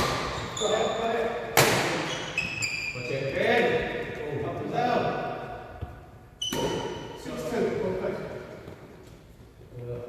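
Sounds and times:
shoe squeaking on floor: 0:00.2 - 0:01.2, 0:02.0 - 0:03.2, 0:06.3 - 0:07.2.

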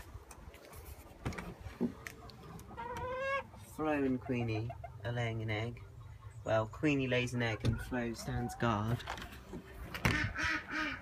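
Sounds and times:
ducks quacking: 0:09.6 - 0:11.0.

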